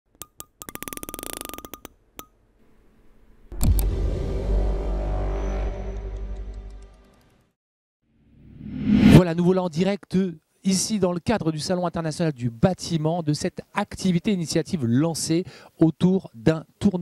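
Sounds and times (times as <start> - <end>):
loud deep hit: 3.5 - 6.6.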